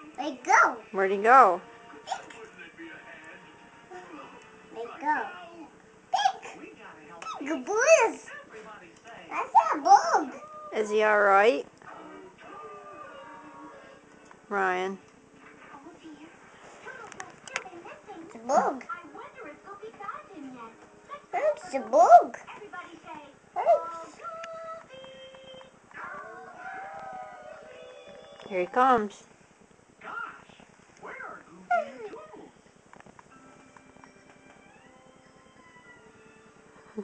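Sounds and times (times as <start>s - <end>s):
faint steady electronic tones: 32.4s - 37.0s.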